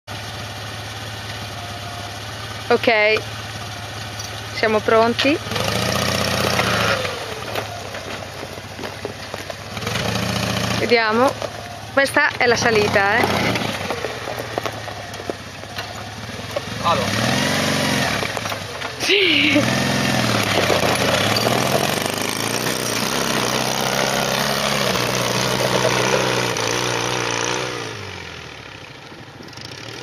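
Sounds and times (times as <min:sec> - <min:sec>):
buggy engine idling: 0:00.0 - 0:30.0.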